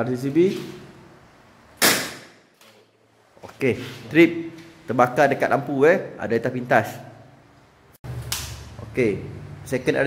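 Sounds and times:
electrical short circuit bang: 1.8 - 2.5.

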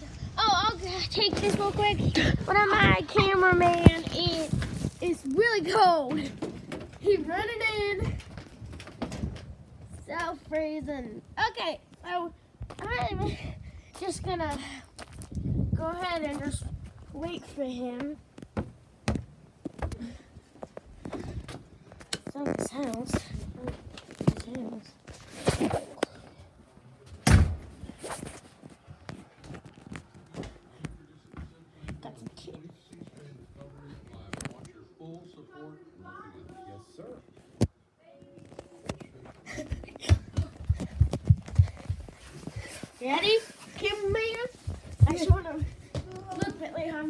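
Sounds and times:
footsteps on wooden deck: 16.0 - 22.2, 39.7 - 47.0.

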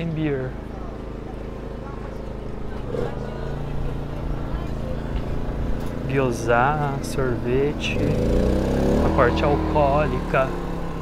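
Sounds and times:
faint voices: 0.0 - 8.4
engine humming: 0.0 - 11.0.

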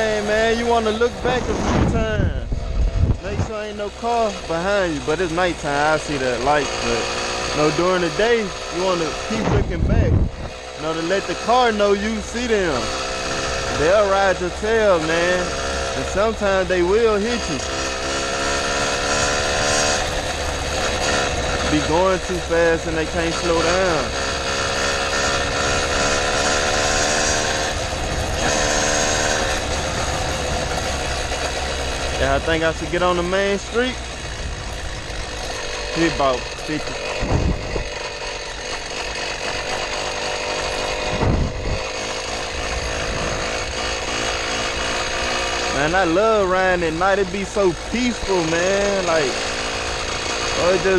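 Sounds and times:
two-stroke engine running: 0.0 - 50.9
low thuds: 1.2 - 3.6, 37.2 - 38.0, 41.1 - 41.8.

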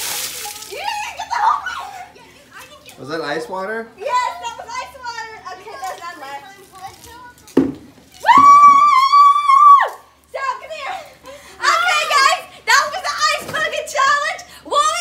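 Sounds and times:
girl screaming: 0.7 - 2.0, 8.2 - 10.6.

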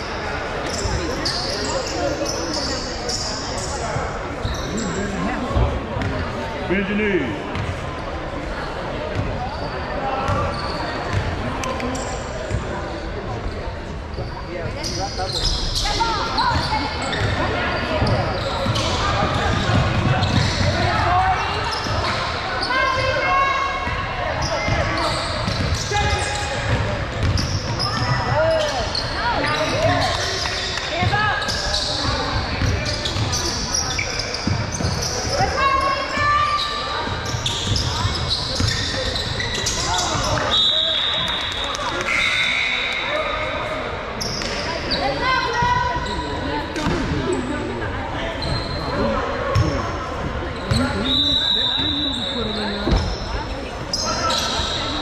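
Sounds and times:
voices of players and spectators: 0.0 - 55.0
basketball bouncing on gym floor: 26.6 - 28.2.

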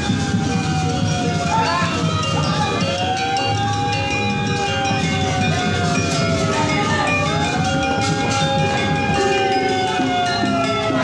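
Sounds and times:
gamelan music: 0.0 - 11.0
low crowd rumble: 0.0 - 11.0.

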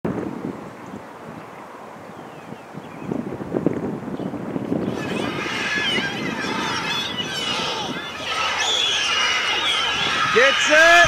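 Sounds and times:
wind buffeting microphone: 0.1 - 11.0
babble of distant voices: 4.8 - 10.8.

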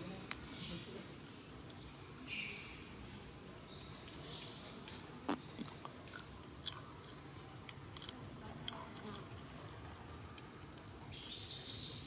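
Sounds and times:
insects singing: 0.0 - 12.0.

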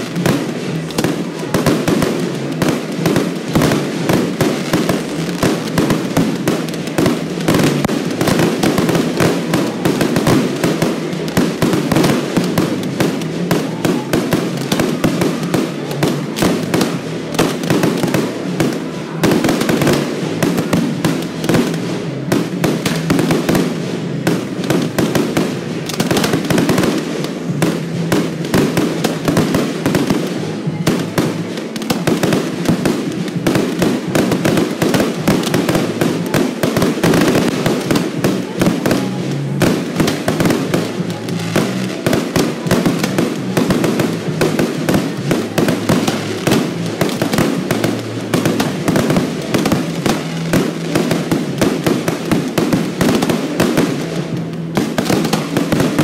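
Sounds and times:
fireworks bangs and crackles: 0.0 - 56.0.

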